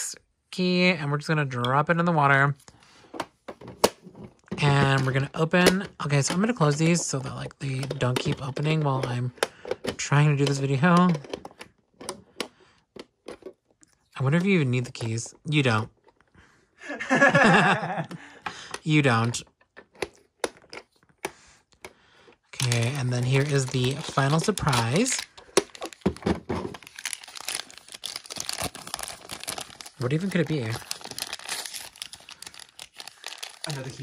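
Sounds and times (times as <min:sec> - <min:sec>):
paper wrapper crinkling: 0:22.5 - 0:34.0.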